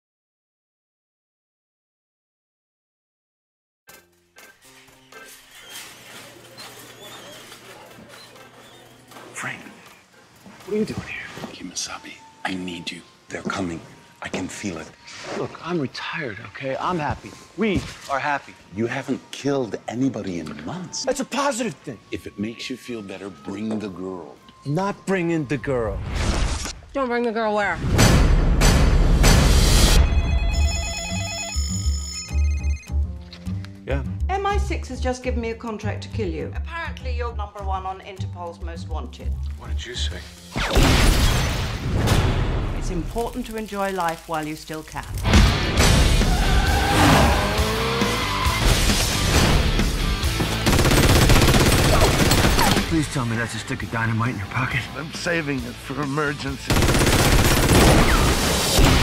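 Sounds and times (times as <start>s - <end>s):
trailer music with low beat: 27.8s - 30.6s, 45.2s - 51.6s
phone ringing with warbling ring: 30.0s - 33.0s
automatic machine-gun fire: 50.6s - 52.9s, 56.7s - 58.4s.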